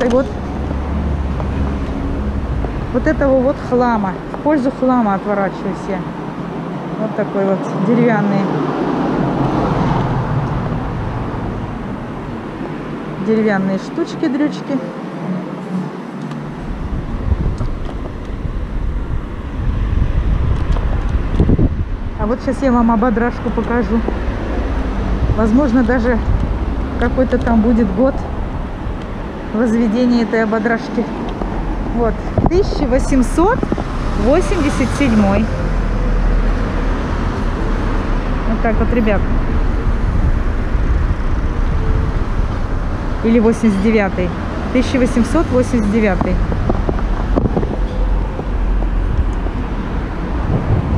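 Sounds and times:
traffic rumble: 0.0s - 50.9s
wind buffeting microphone: 16.2s - 50.9s.

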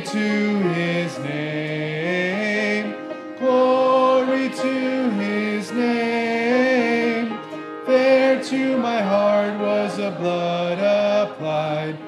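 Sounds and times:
congregation singing a hymn: 0.0s - 12.0s
piano accompaniment: 0.0s - 12.0s.

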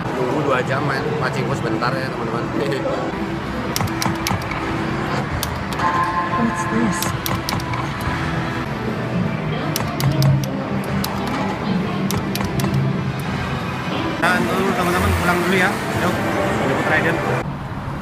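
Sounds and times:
gaming hall noise: 0.0s - 17.5s
slot machine electronic music: 3.3s - 17.1s
sharp clicks: 3.7s - 4.7s, 5.3s - 5.8s, 7.0s - 8.2s, 9.7s - 11.4s, 12.0s - 13.3s.

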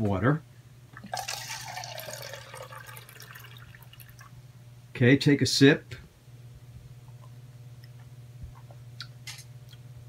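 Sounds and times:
water running into plastic cup: 1.0s - 4.3s.

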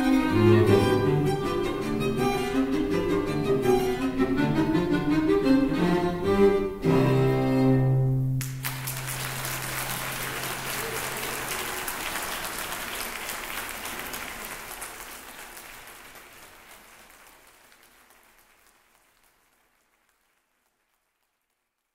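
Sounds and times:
audience applauding: 8.4s - 21.9s.

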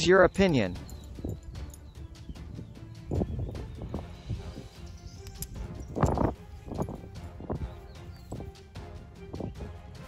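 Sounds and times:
background music: 0.0s - 10.0s
metal coins clinking: 5.2s - 7.0s.

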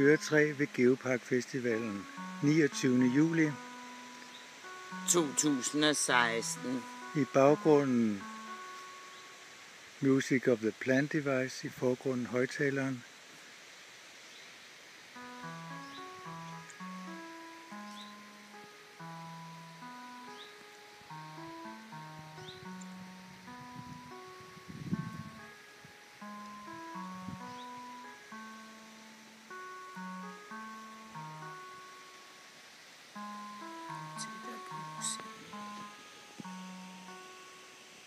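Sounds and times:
synthesized notes through loudspeaker: 33.2s - 36.1s.

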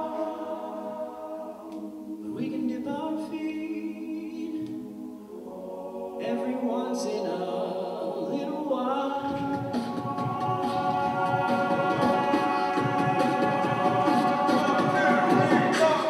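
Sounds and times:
male a cappella singing: 0.0s - 4.7s, 6.1s - 16.0s.

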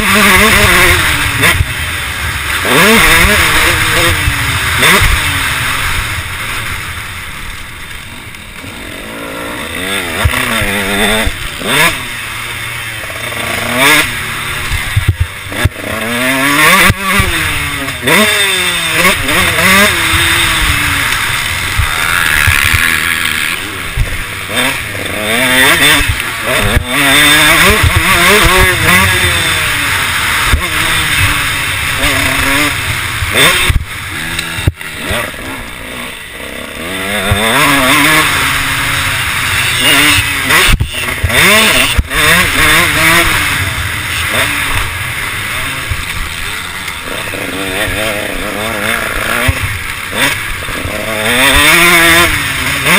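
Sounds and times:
motocross engine revving: 0.0s - 52.9s.

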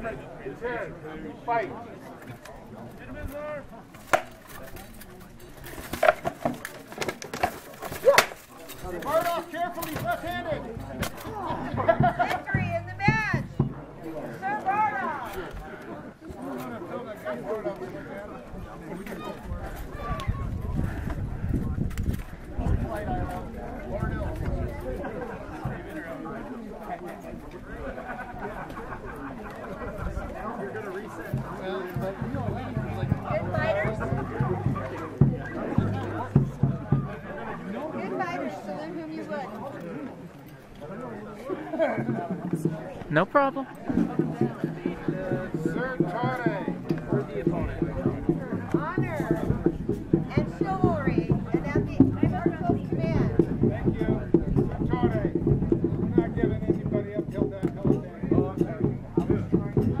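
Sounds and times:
crowd chatter: 0.0s - 60.0s.

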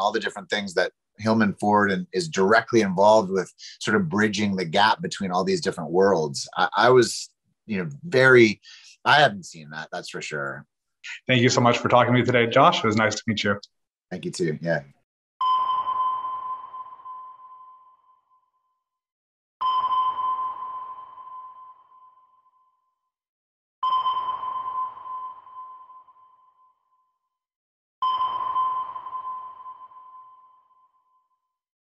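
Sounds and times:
sonar ping: 15.4s - 18.7s, 19.6s - 23.0s, 23.8s - 27.3s, 28.0s - 31.5s.

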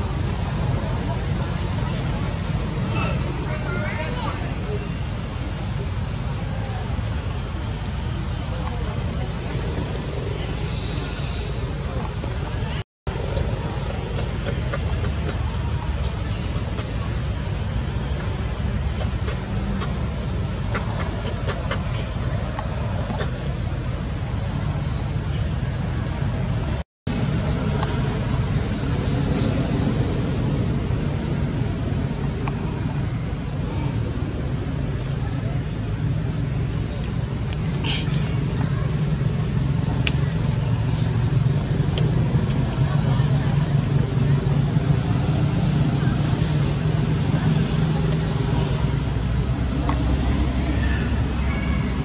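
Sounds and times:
low outdoor rumble: 0.0s - 52.0s.

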